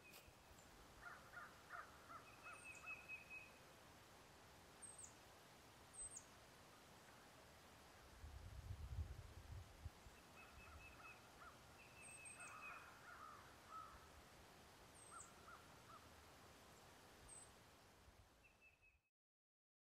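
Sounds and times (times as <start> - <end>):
birds calling: 1.0 - 3.5, 10.2 - 14.0.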